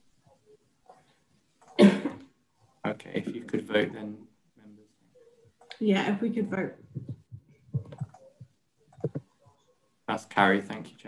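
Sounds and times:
person coughing: 1.8s - 2.2s.

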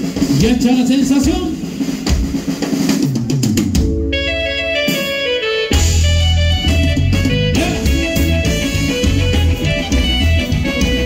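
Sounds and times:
drum strikes: 0.0s - 11.0s
live band dance music: 0.0s - 11.0s.

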